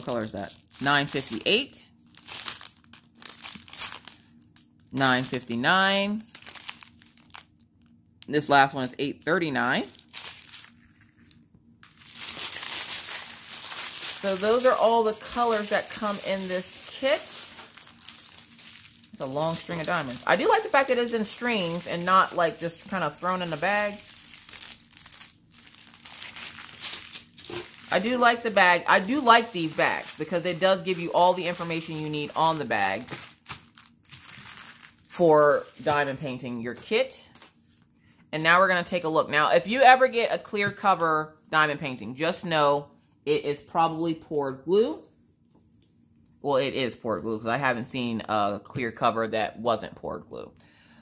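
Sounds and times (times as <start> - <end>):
plastic bags crinkling: 0.0 - 8.0, 9.5 - 37.9.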